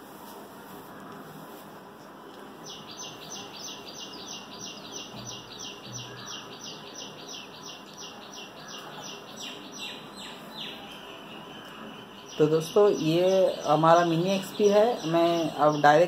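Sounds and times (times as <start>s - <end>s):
bird chirping: 2.6s - 16.0s.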